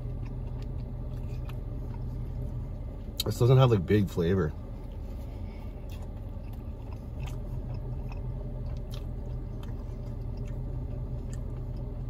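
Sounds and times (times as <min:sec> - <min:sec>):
person chewing food: 0:00.0 - 0:03.3, 0:04.8 - 0:12.0.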